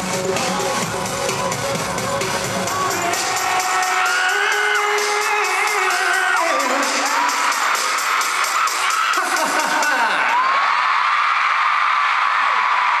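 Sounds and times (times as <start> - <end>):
live pop song with steady beat: 0.0 - 10.6
crowd screaming and cheering: 0.0 - 13.0.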